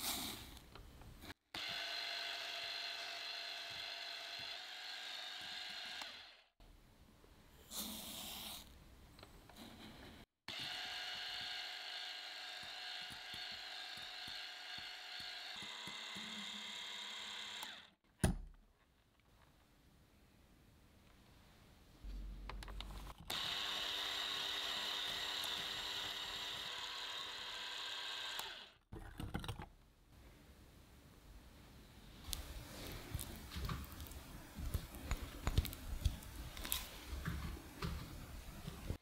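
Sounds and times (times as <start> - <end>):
electric hand mixer whining: 1.5 - 6.5, 10.5 - 18.0, 23.3 - 28.8.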